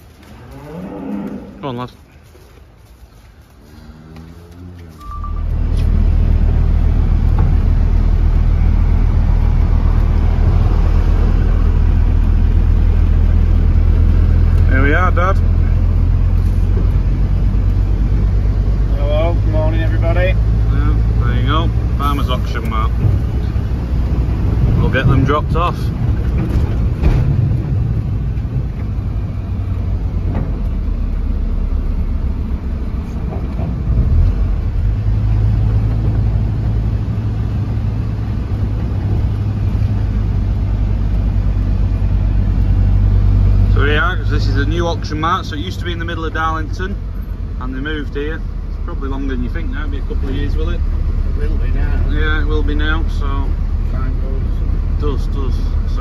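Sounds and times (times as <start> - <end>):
vehicle engine and tyre noise: 0.0 - 56.0.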